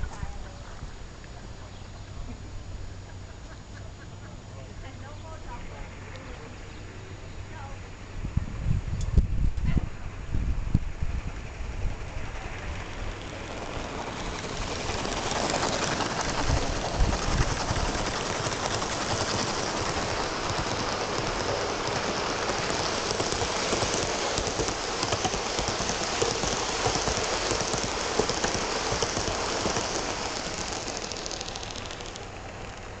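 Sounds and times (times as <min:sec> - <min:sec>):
model train wheels on rails: 0:00.0 - 0:33.0.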